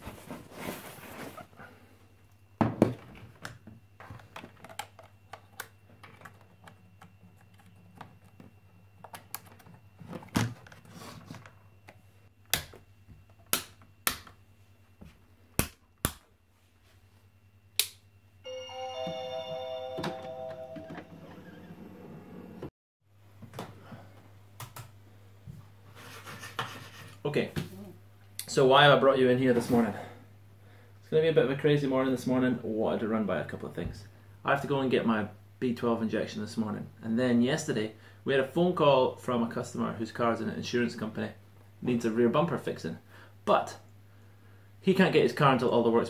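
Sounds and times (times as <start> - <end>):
low steady hum: 0.0 - 26.1
chime of held tones: 18.4 - 21.7.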